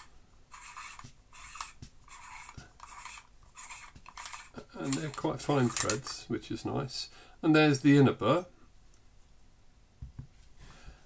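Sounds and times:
hand grinder threads scraping: 0.0s - 6.2s.

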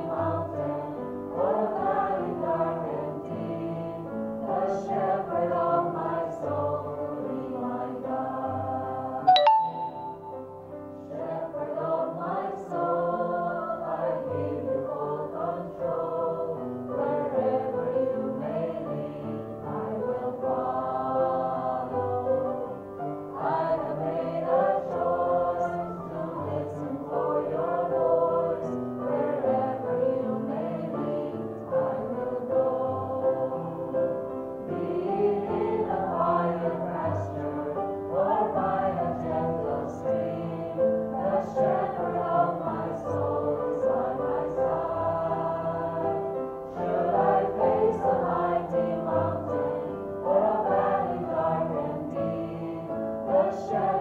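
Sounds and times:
women singing in unison: 0.0s - 9.3s, 11.1s - 54.0s.

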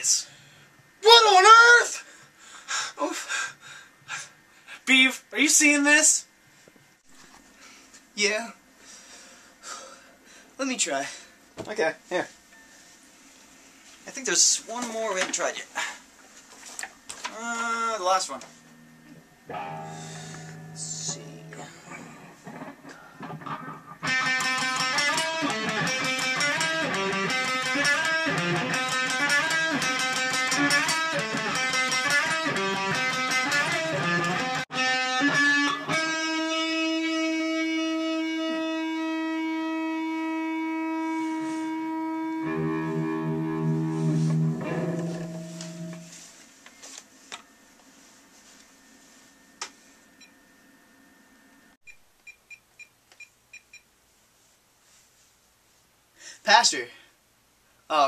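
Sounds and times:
electric guitar: 18.4s - 46.3s.

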